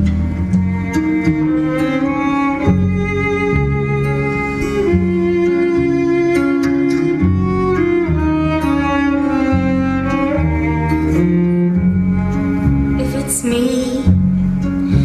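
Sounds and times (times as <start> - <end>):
bass line: 0.0 - 15.0
bowed strings holding long notes: 0.0 - 15.0.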